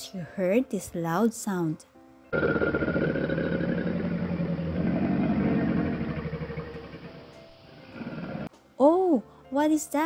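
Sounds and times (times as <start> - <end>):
caiman grunting: 2.4 - 7.3, 7.9 - 8.5.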